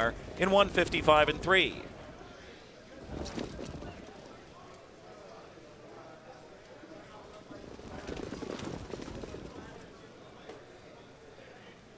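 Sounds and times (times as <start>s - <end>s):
faint background voices: 1.3s - 11.9s.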